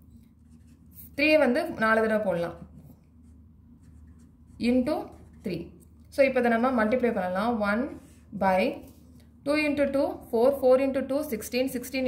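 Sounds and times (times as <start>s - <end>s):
pen scratching on paper: 0.2s - 1.4s, 2.5s - 5.8s.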